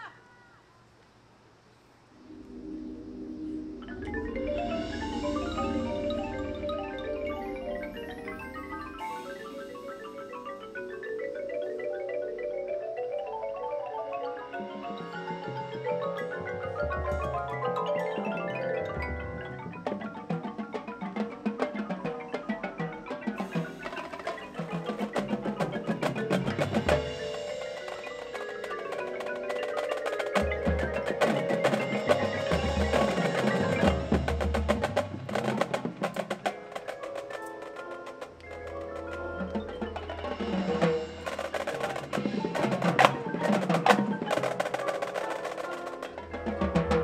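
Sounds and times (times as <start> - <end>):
marimbas playing quick runs: 3.7 - 47.0
marching band music: 3.8 - 12.9, 14.1 - 47.0.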